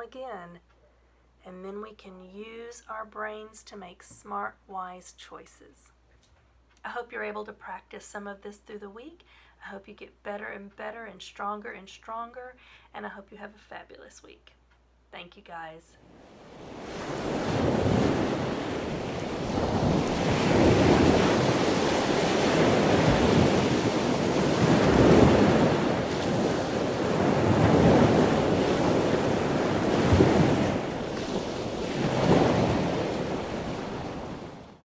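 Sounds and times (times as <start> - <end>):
ocean waves washing in: 16.1 - 34.8.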